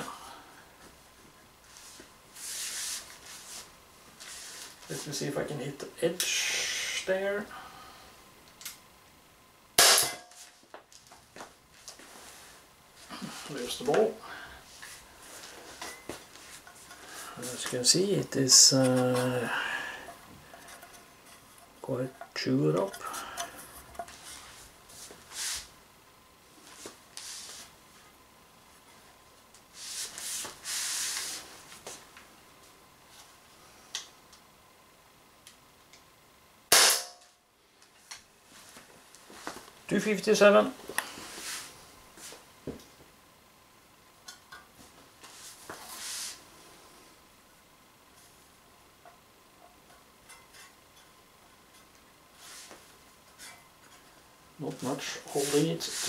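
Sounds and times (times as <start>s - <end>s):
air pistol shot: 9.8s - 10.2s, 36.7s - 37.2s
rustling handling noise: 51.6s - 56.0s.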